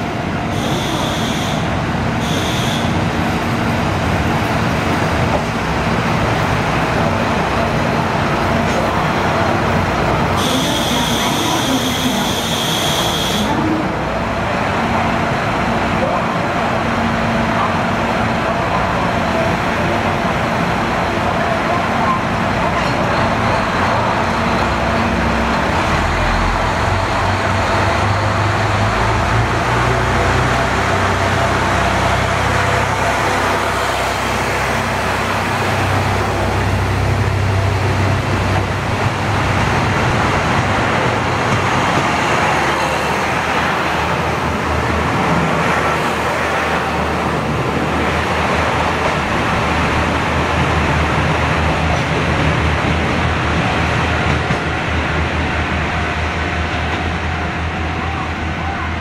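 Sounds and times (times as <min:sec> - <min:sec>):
diesel train engines running: 0:00.0 - 0:59.0.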